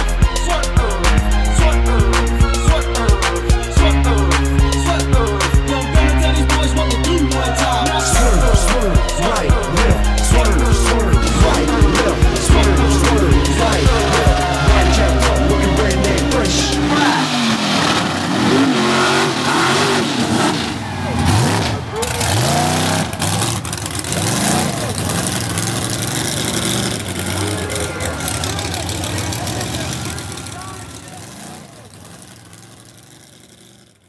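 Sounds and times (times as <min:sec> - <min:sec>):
truck engines revving: 0:00.0 - 0:34.0
people shouting: 0:00.9 - 0:20.1, 0:27.0 - 0:31.9.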